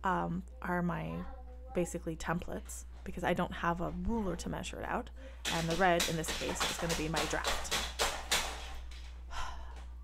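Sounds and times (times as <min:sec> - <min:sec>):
woman sighing: 0:09.3 - 0:10.0.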